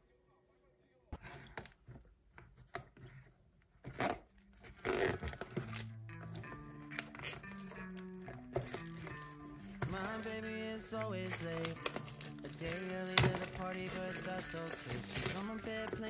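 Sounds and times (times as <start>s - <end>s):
cardboard box handling: 3.8s - 16.0s.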